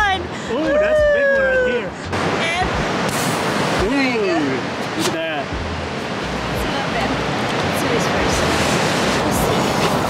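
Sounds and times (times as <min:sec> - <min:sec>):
ocean surf washing: 0:00.0 - 0:10.0.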